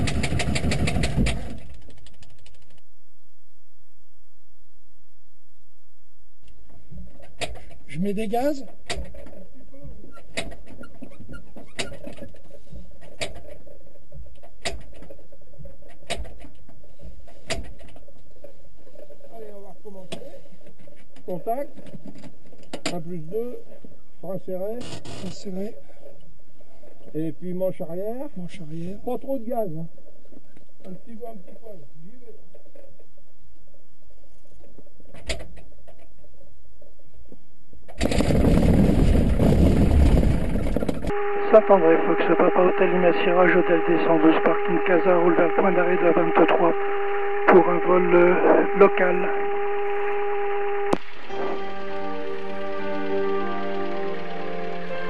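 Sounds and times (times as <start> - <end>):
aircraft engine turning over: 0.0 - 1.7.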